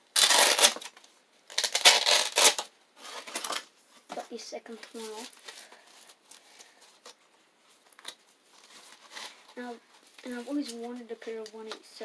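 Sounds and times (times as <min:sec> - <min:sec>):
protective pads rustling and scraping: 0:00.2 - 0:12.0.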